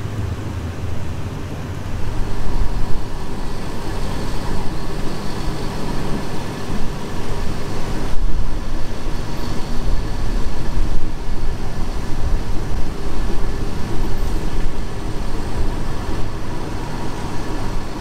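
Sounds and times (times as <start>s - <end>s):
rushing air: 0.0s - 18.0s
train wheels rumbling on rails: 0.0s - 18.0s.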